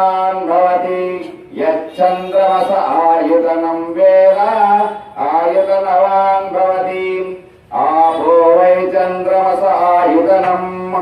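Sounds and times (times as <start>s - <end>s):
man chanting melodic phrases: 0.0s - 11.0s.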